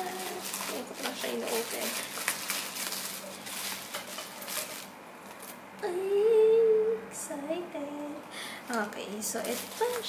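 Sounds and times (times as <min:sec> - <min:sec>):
person humming: 0:00.0 - 0:00.4, 0:05.8 - 0:08.2
plastic packaging crinkling: 0:00.0 - 0:05.6, 0:08.7 - 0:10.0.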